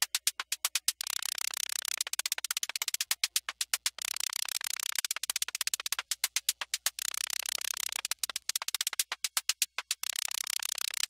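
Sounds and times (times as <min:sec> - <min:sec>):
synthesized hi-hat ticks: 0:00.0 - 0:11.0.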